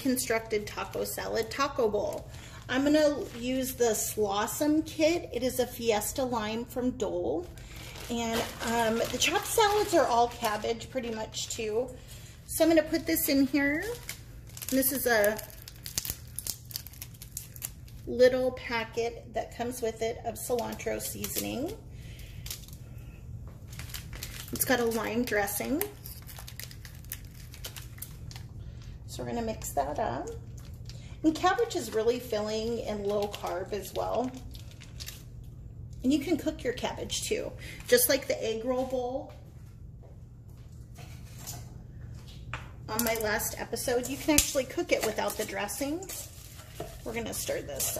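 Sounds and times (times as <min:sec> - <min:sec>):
low steady hum: 0:00.0 - 0:47.9
plastic packet crinkling: 0:07.3 - 0:11.6, 0:12.8 - 0:18.2, 0:20.4 - 0:22.9, 0:23.6 - 0:29.0, 0:29.6 - 0:35.6, 0:43.0 - 0:47.9.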